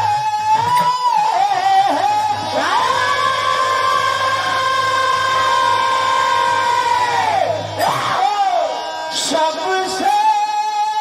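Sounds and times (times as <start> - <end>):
singers holding high note: 0.0 - 10.1.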